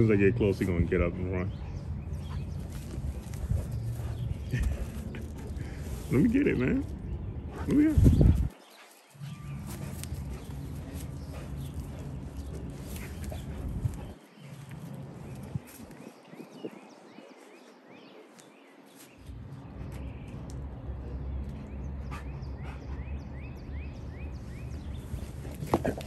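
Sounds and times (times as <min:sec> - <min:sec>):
wind rumble on microphone: 0:01.5 - 0:08.7, 0:09.5 - 0:17.5
dog pawing in dry dirt: 0:02.0 - 0:20.3, 0:24.5 - 0:26.0.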